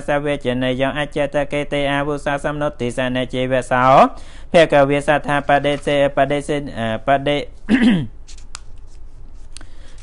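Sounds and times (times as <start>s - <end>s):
monk chanting: 0.0s - 7.5s.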